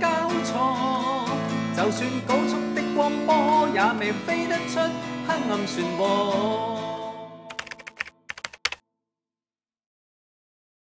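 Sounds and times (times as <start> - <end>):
keyboard key clicks: 7.5 - 8.8.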